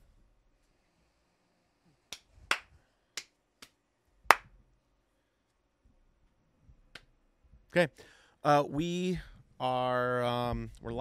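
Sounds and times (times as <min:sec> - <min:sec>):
finger snaps: 0:06.9 - 0:07.1.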